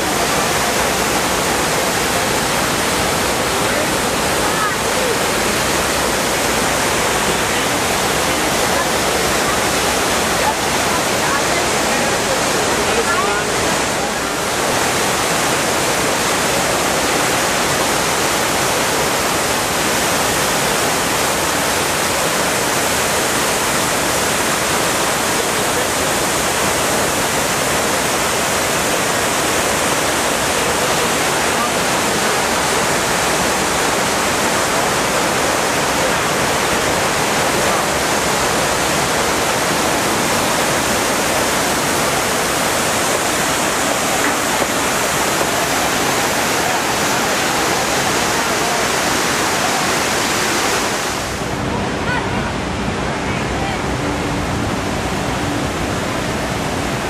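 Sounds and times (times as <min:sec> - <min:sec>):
water cascading down walls: 0:00.0 - 0:57.0.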